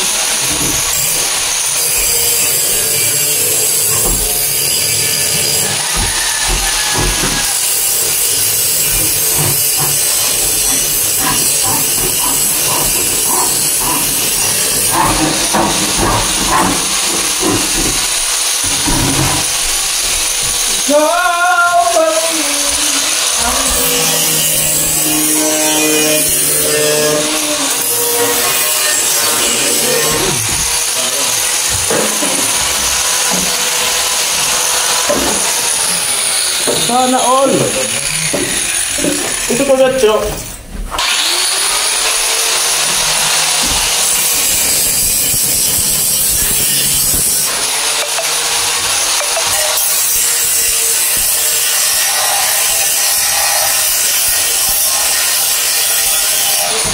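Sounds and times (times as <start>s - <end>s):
handsaw cutting plywood: 0.0s - 56.9s
indistinct voices: 2.0s - 19.6s, 20.4s - 33.9s, 34.5s - 40.6s.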